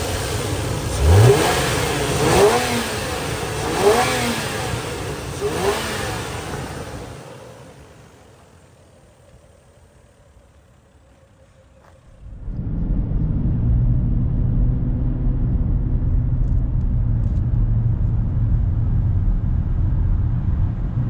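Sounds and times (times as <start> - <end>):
car engine revving: 0.0 - 9.3.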